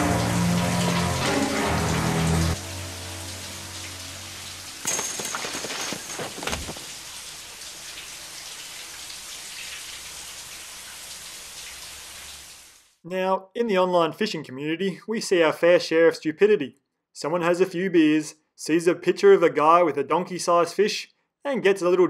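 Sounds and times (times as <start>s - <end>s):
low string music: 0.0s - 4.6s
shower running: 0.0s - 13.0s.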